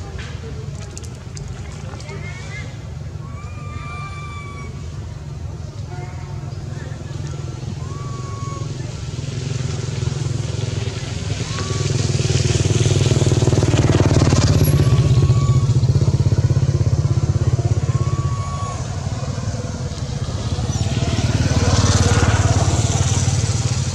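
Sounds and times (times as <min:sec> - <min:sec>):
high whistling calls: 0:07.3 - 0:09.0, 0:14.3 - 0:16.5, 0:17.4 - 0:19.8
small engine running: 0:07.8 - 0:23.9.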